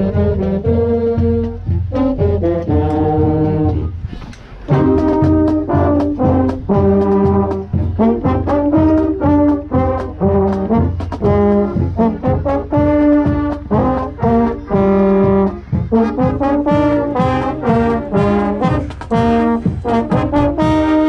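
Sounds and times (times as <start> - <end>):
marching band brass chords: 0.0 - 21.0
trombone: 0.0 - 21.0.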